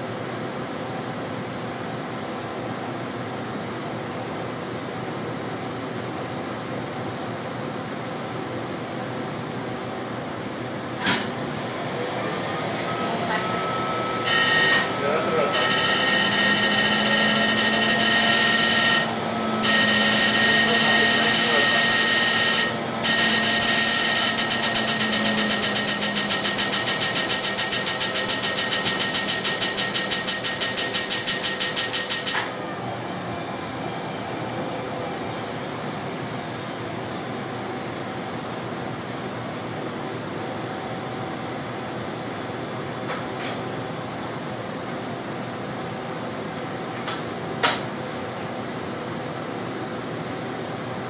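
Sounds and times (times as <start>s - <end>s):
steady machine hum: 9.9s - 40.7s.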